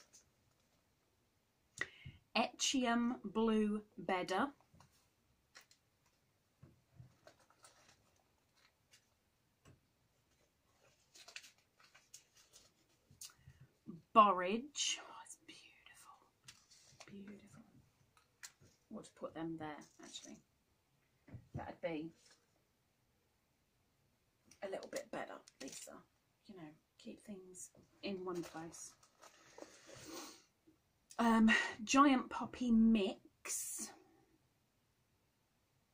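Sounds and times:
paper rustling: 6.9 - 9.2, 10.1 - 13.6, 16.4 - 18.9, 24.8 - 25.9, 28.1 - 30.4.

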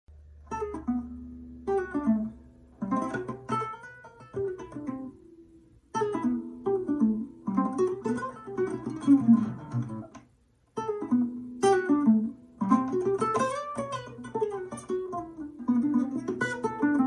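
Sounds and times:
fingerstyle classical guitar: 0.3 - 17.0.

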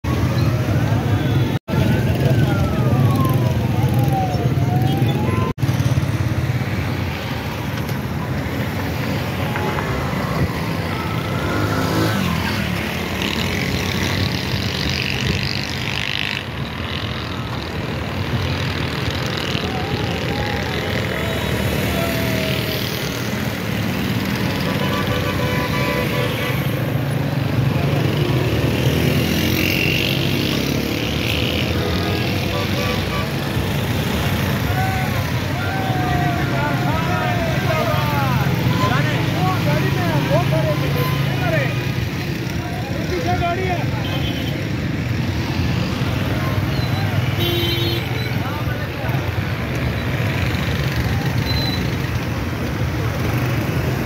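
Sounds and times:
motorcycle and car engines: 0.0 - 54.0
people shouting: 19.7 - 23.0, 34.6 - 38.6.

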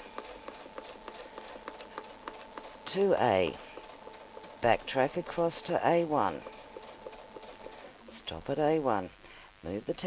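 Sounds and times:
sewing machine motor whine: 0.0 - 8.1.

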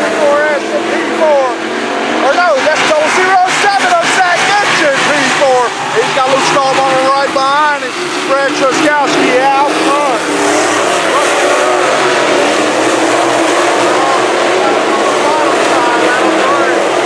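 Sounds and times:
race cars passing by: 0.0 - 17.0.

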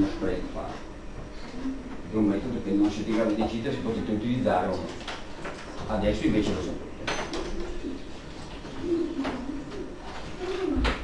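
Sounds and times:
bird cooing: 1.3 - 2.1, 7.4 - 11.0.

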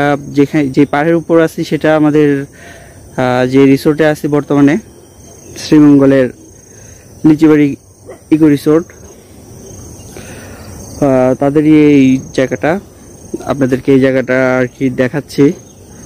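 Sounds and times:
man speaking: 0.0 - 9.3, 10.9 - 16.0
insects trilling: 0.0 - 16.0.

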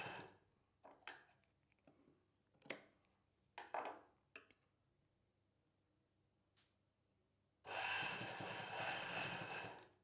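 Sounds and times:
sewing machine stitching: 7.7 - 9.9.

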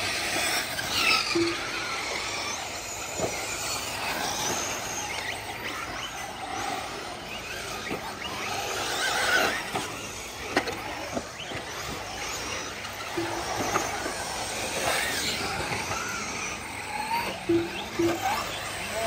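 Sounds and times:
radio-controlled car motors whining: 0.0 - 19.0.

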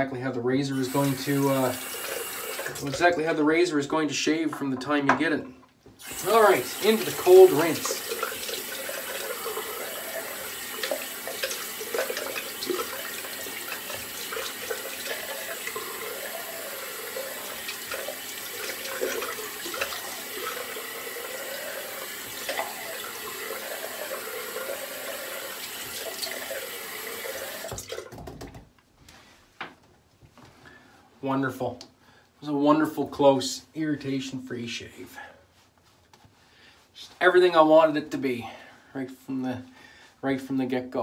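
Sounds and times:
sink tap running: 0.8 - 3.2, 6.0 - 28.3.

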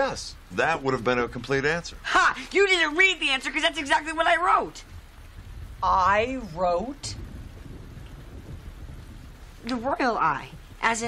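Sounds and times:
faint hiss: 0.0 - 11.0
low rumbling background noise: 0.0 - 11.0.

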